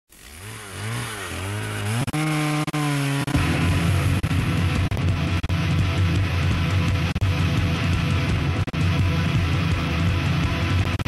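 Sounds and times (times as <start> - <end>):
distorted electric guitar: 2.8 - 11.0.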